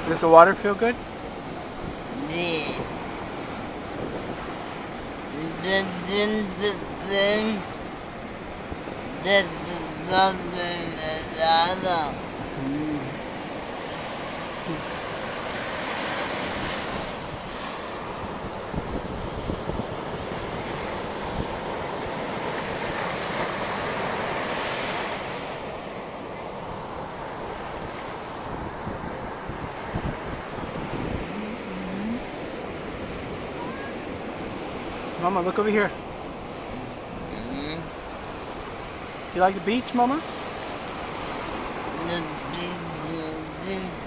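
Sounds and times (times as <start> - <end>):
ocean surf breaking: 0.0 - 44.0
wind buffeting microphone: 1.1 - 5.6, 16.5 - 23.0, 27.8 - 35.1.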